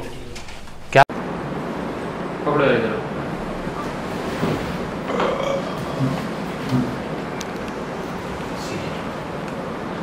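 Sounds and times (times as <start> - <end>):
steady rushing noise: 1.1 - 10.0.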